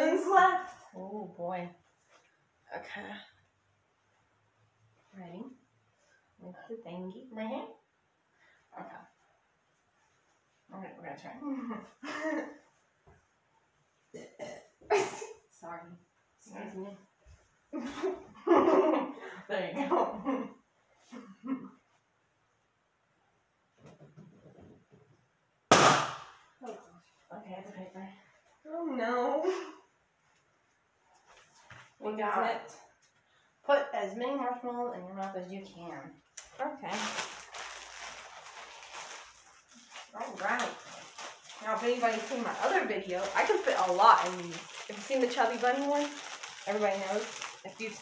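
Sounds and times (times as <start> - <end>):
woman's voice: 0.0 - 1.8, 40.1 - 40.8, 41.6 - 48.0
plastic bag crinkling: 36.8 - 48.0.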